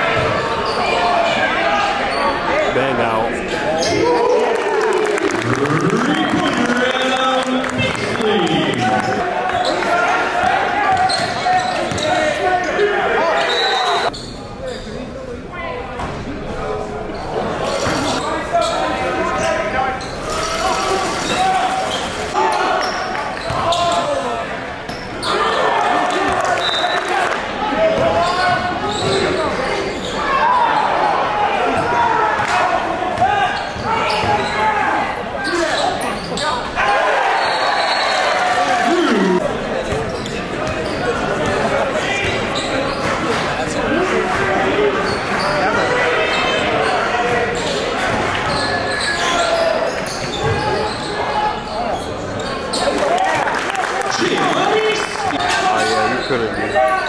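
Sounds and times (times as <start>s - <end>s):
voices echoing in hall: 0.0s - 57.0s.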